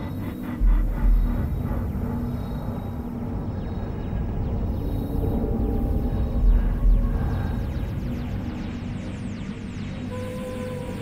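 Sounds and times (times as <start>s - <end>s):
low rumble: 0.0s - 9.4s
held low drone: 0.0s - 11.0s
deep low boom: 0.6s - 3.5s.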